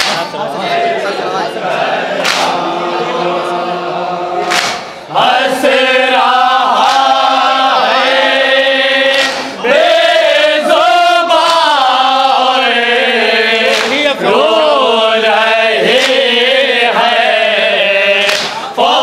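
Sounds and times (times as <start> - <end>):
men chanting in unison: 0.0 - 19.0.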